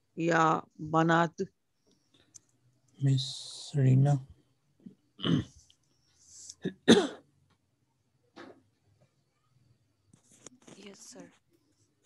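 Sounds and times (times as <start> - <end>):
person clearing throat: 5.2 - 5.6, 6.6 - 7.2.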